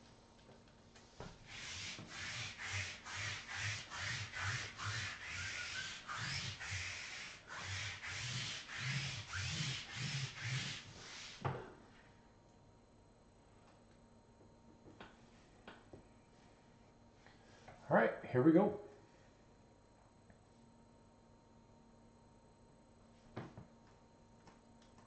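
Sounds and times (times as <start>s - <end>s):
lint roller rasping over cloth: 1.3s - 11.4s.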